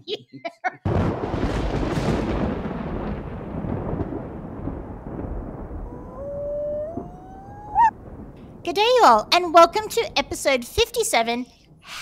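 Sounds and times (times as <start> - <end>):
thunder rumble: 0.9 - 10.8
howl rising in pitch: 5.6 - 7.9
quick upward sweep: 5.8 - 7.9.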